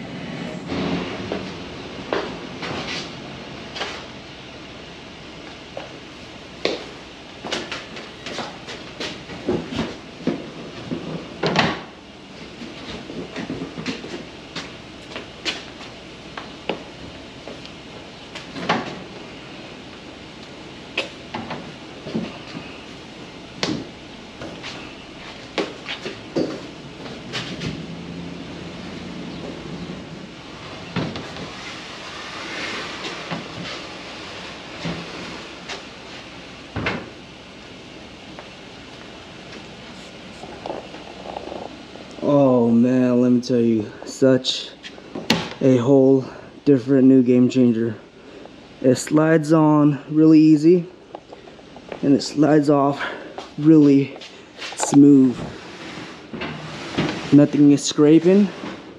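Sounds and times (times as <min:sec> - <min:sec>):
low rolling rumble: 0:00.0 - 0:58.9.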